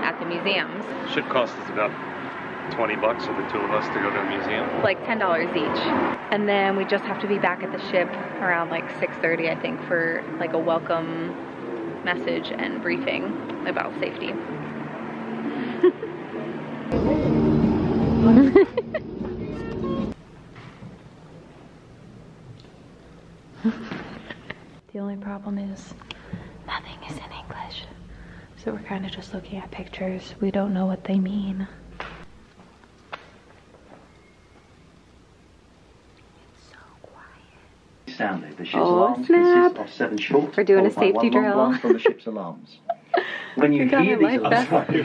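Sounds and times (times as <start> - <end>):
tram rumbling with electric hum: 0.0 - 23.6, 24.7 - 38.0
tram squeals: 33.9 - 35.0
faint whispered voice: 36.4 - 37.7.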